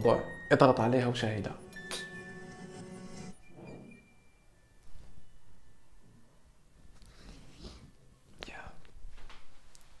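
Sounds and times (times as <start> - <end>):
person whispering: 8.4 - 9.0.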